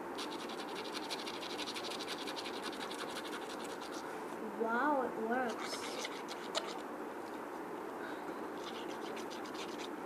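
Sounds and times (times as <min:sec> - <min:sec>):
scratch card being scratched: 0:00.2 - 0:04.0, 0:05.5 - 0:06.8, 0:08.6 - 0:10.0.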